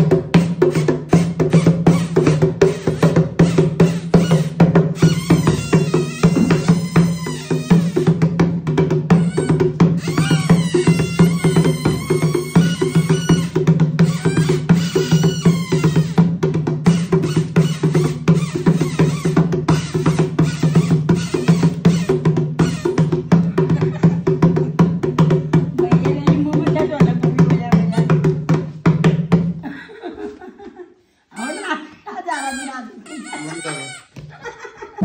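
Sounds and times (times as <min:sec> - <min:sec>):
hand drum played fast: 0:00.0 - 0:29.6.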